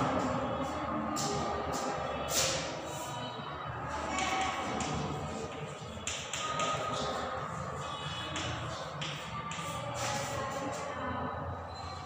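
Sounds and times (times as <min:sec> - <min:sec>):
chalk tapping and scraping on chalkboard: 0:01.2 - 0:03.2, 0:04.0 - 0:10.9.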